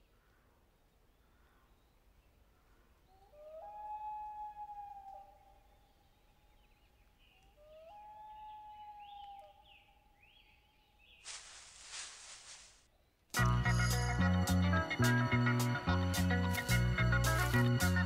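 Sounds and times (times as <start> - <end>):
faint long howls: 3.1 - 5.8, 7.5 - 10.0.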